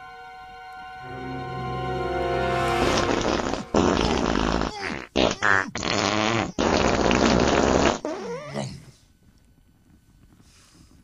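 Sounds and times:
fart sound effects: 2.8s - 8.7s.

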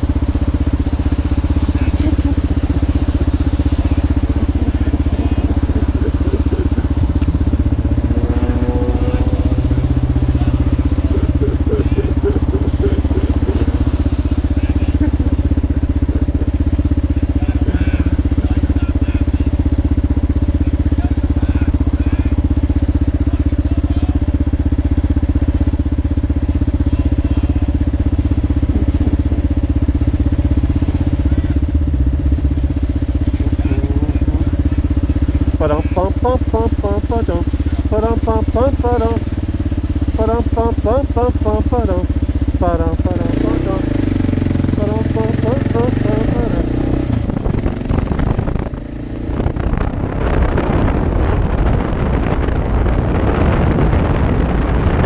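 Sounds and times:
motorcycle engine idling: 0.0s - 52.9s.

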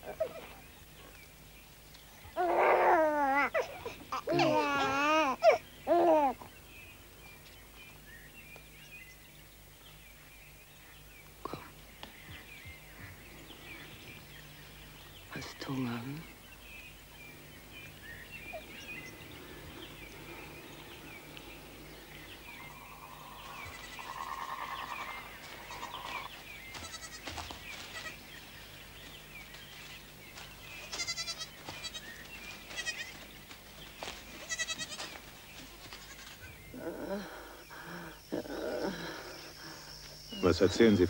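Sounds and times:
goats bleating: 23.3s - 25.0s, 25.6s - 28.2s, 30.9s - 33.2s, 34.4s - 36.5s.

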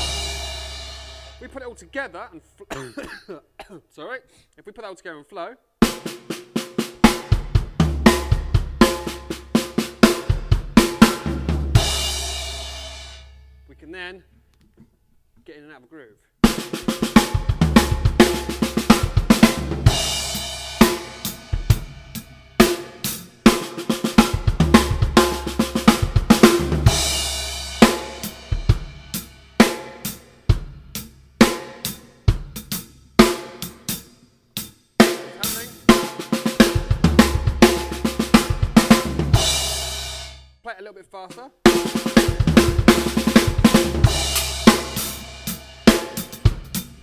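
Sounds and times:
drum kit groove: 0.0s - 2.8s, 5.8s - 14.0s, 16.4s - 47.0s
bass drum kicks: 7.1s - 12.4s, 16.8s - 22.4s, 36.6s - 39.7s, 41.7s - 47.0s
snare drum rolls: 41.7s - 45.2s.

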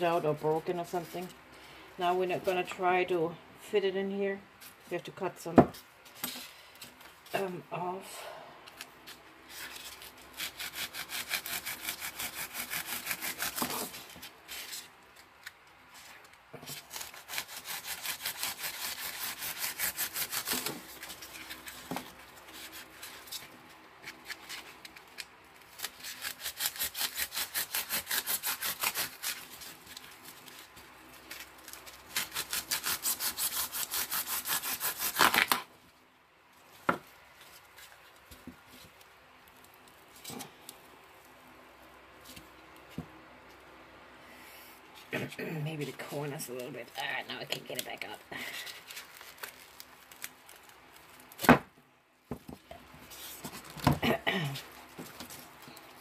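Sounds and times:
knife sawing through stems: 9.5s - 14.9s, 16.7s - 23.4s, 25.8s - 30.7s, 31.3s - 35.6s.

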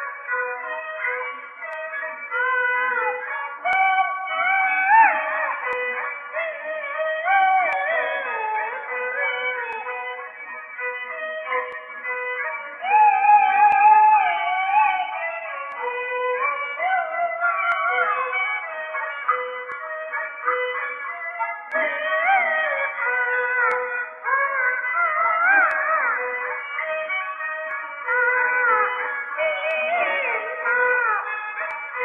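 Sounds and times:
bowed fiddle melody: 0.0s - 32.0s.

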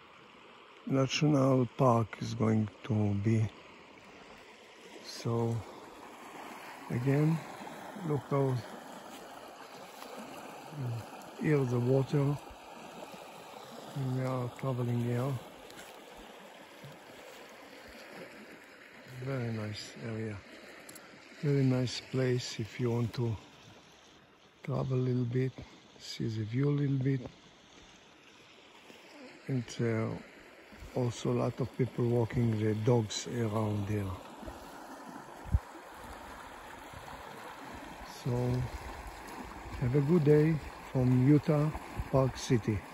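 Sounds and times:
creek flowing: 0.0s - 42.9s.

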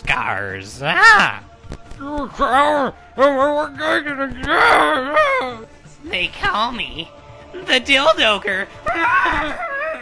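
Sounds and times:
gagged man moaning: 2.0s - 5.7s.

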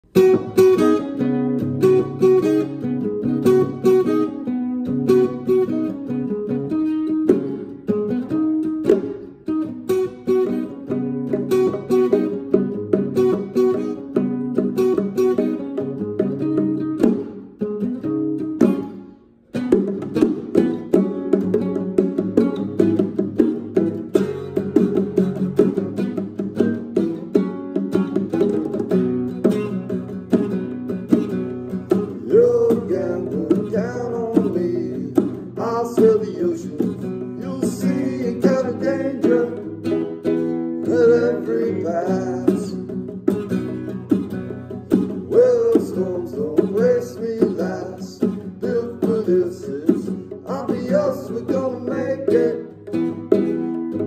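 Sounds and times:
acoustic guitar picking: 0.0s - 54.0s.

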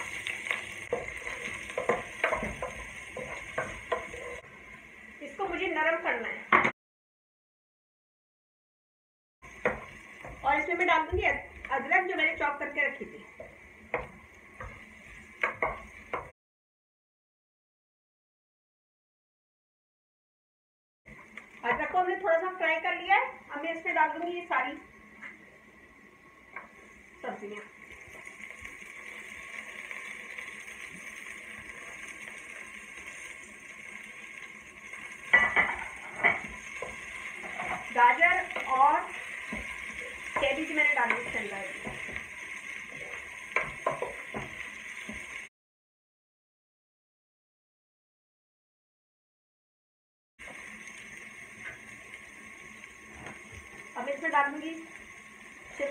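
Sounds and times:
vegetables sizzling in oil: 0.0s - 6.7s, 9.4s - 16.3s, 21.1s - 45.5s, 50.4s - 55.9s
woman talking: 5.2s - 6.5s, 10.4s - 13.3s, 21.6s - 24.8s, 27.2s - 27.7s, 37.9s - 39.2s, 40.4s - 41.8s, 54.0s - 54.9s.

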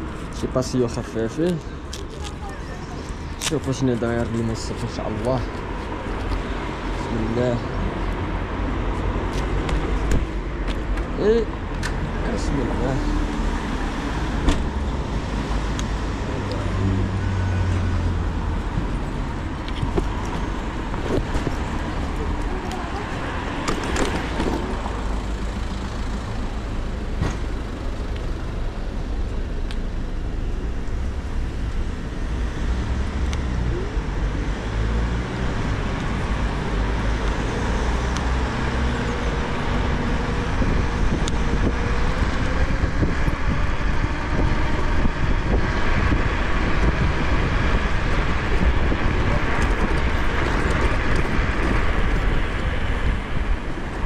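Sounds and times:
car traffic: 0.0s - 54.0s
wind buffeting microphone: 38.9s - 54.0s.

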